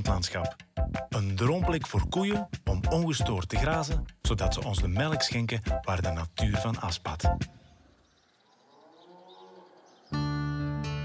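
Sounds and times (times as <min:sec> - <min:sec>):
cow mooing: 0:08.5 - 0:10.1.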